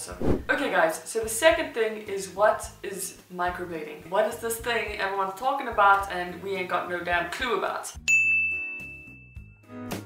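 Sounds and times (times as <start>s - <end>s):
bell-like chime ding: 8.1s - 9.6s.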